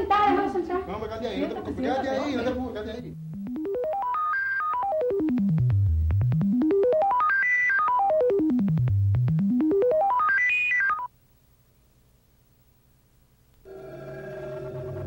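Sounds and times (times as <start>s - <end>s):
synthesizer fast stepped notes: 3.1s - 10.5s.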